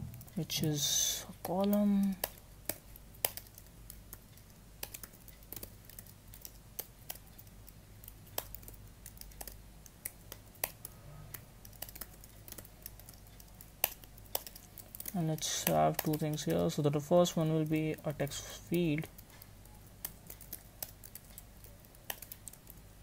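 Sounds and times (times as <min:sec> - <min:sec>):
keyboard typing: 0:00.0 - 0:23.0.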